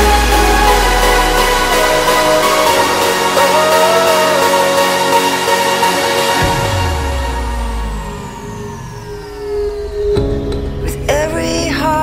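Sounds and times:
electronic dance music: 0:00.0 - 0:10.5
synth tones gliding downward: 0:00.0 - 0:11.2.

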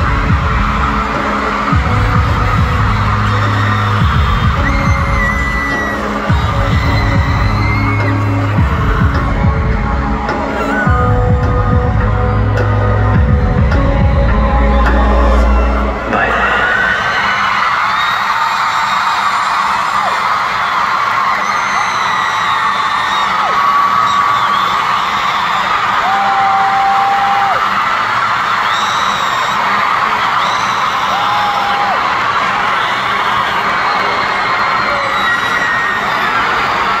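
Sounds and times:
music with deep bass: 0:00.0 - 0:16.6
concert crowd cheering: 0:00.0 - 0:37.0
long high-pitched screams: 0:03.1 - 0:08.5, 0:15.4 - 0:37.0.

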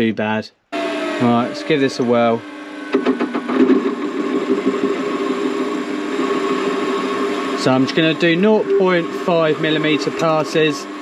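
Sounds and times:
lathe cutting metal: 0:00.8 - 0:11.0.

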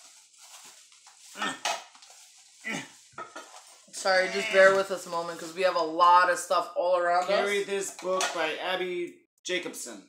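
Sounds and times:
packaging rustling: 0:00.0 - 0:05.0.

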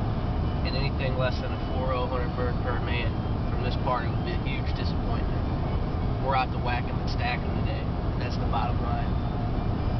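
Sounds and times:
road and engine rumble: 0:00.0 - 0:09.9.

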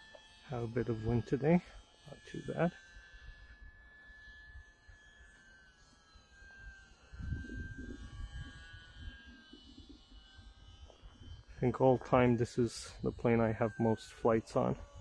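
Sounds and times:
rc plane motor whine: 0:00.0 - 0:15.0
wind rumble on microphone: 0:06.7 - 0:15.0.

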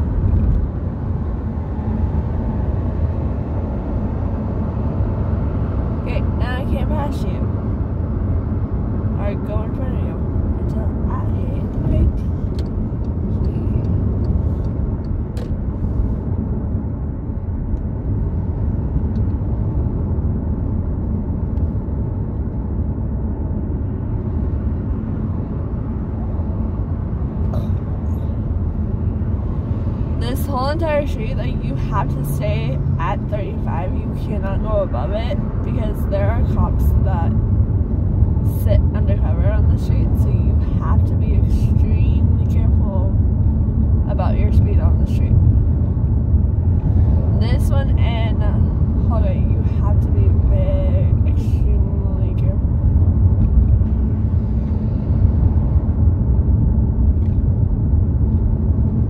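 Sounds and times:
car cabin road rumble: 0:00.0 - 0:59.0.

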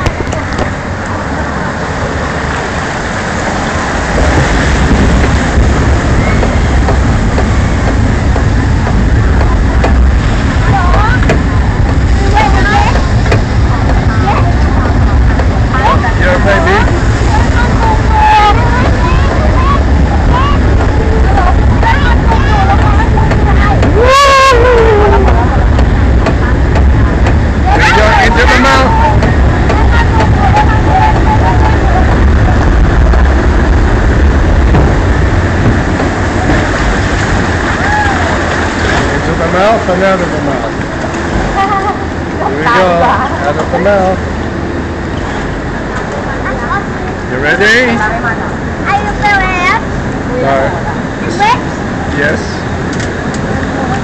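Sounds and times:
lift conveyor rumble: 0:00.0 - 0:54.0
passengers' voices: 0:00.0 - 0:54.0
loud rising and falling cry: 0:23.8 - 0:25.4, 0:37.6 - 0:38.6.

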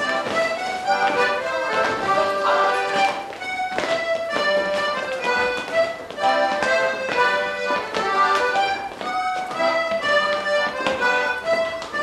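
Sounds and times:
accordion: 0:00.0 - 0:12.0
fiddle: 0:00.0 - 0:12.0
sharp taps: 0:00.0 - 0:12.0.

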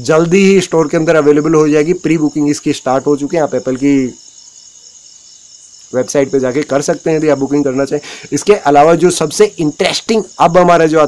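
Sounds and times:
man speaking: 0:00.0 - 0:04.2, 0:05.9 - 0:11.0
insects trilling: 0:00.0 - 0:11.0.

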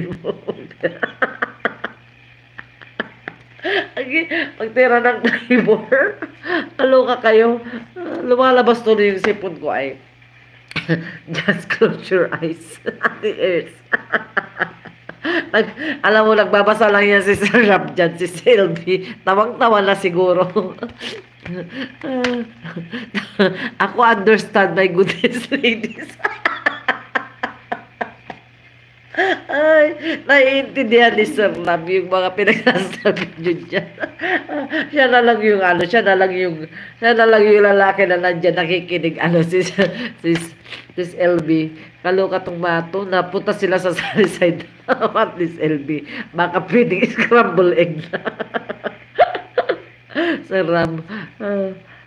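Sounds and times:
woman's stifled laughter: 0:00.0 - 0:02.0, 0:13.8 - 0:15.8, 0:48.2 - 0:50.4
woman laughing breathlessly: 0:02.6 - 0:04.6, 0:06.3 - 0:06.8, 0:13.9 - 0:16.0, 0:20.8 - 0:22.0, 0:22.6 - 0:23.8, 0:29.1 - 0:30.3, 0:33.8 - 0:35.0, 0:48.3 - 0:50.5.

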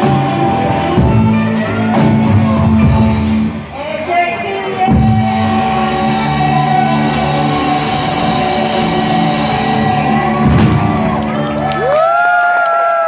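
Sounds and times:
rock band sustained chord: 0:04.8 - 0:11.8
audience whooping: 0:05.0 - 0:13.0.

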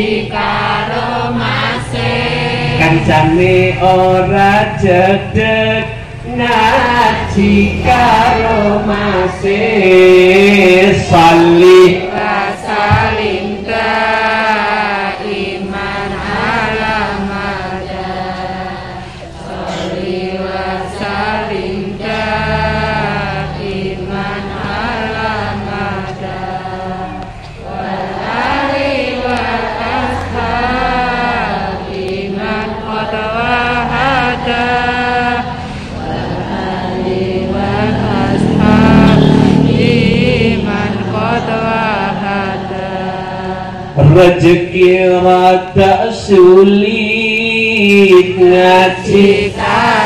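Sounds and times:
steady musical accompaniment: 0:00.0 - 0:45.4
person singing devotional song: 0:00.0 - 0:50.0
person singing: 0:32.3 - 0:50.0.

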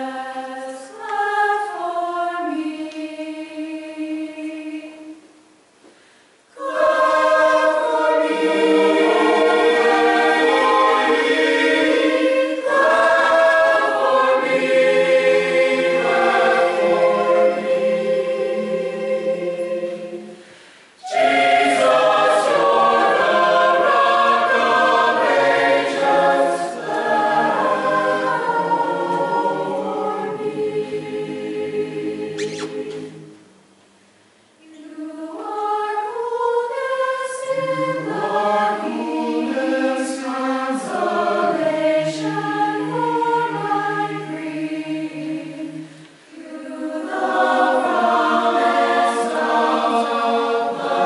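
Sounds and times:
church choir singing a hymn: 0:00.0 - 0:05.2, 0:06.6 - 0:33.4, 0:34.6 - 0:51.0.

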